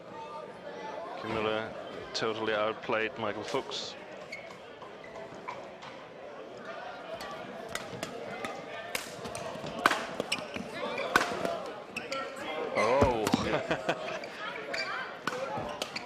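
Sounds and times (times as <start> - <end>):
crowd murmuring: 5.0 - 16.0
racket striking shuttlecock: 9.8 - 10.4.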